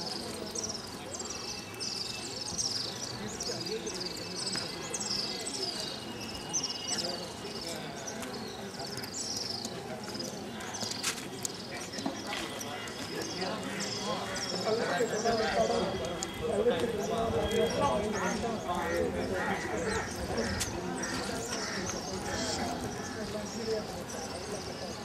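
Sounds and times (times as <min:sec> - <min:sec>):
footsteps on stone paving: 0:04.4 - 0:05.2, 0:08.0 - 0:14.9, 0:15.7 - 0:17.8, 0:18.8 - 0:24.2.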